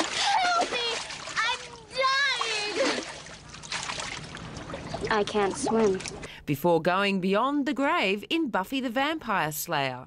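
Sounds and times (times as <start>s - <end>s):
splashing in water: 0.0s - 6.3s.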